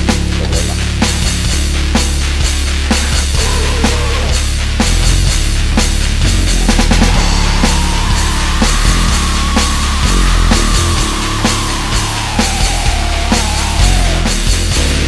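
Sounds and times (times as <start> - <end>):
bass guitar: 0.0 - 15.0
distorted guitar: 0.0 - 15.0
pounding drums: 0.0 - 15.0.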